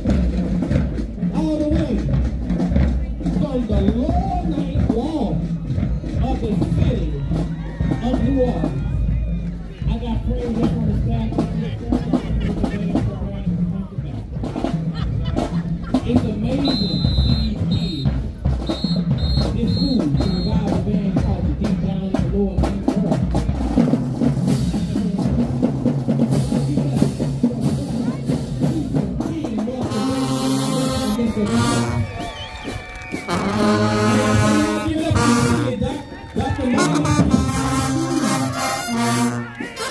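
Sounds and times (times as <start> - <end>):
heavy bass drum: 0.0 - 39.5
marching drumline cadence: 0.0 - 39.9
whistle short blasts: 16.6 - 20.6.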